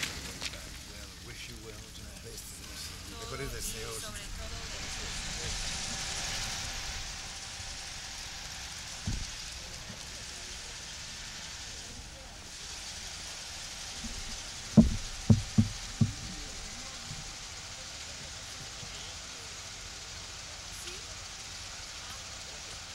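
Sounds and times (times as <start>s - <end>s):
faint indistinct voices: 0.0s - 22.9s
outdoor hiss: 0.0s - 22.9s
muffled thumps: 9.0s - 9.4s, 14.0s - 17.3s
dull low thump: 9.0s - 9.5s, 14.0s - 17.0s.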